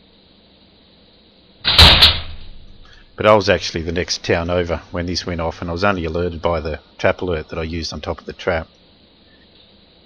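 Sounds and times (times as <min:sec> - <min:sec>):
faint steady hiss: 0:00.0 - 0:10.0
metal trap door clanging shut: 0:01.7 - 0:02.7.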